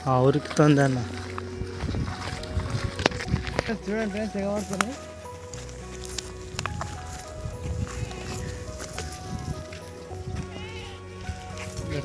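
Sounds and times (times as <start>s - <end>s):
background music: 0.0s - 12.0s
wind rumbling: 0.0s - 12.0s
dry brush rustling: 0.1s - 12.0s
microphone handling noise: 1.0s - 10.6s.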